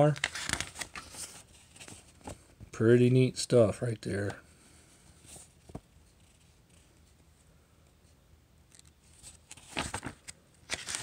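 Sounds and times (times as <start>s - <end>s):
magazine pages riffled: 0.0s - 2.4s, 9.1s - 11.0s.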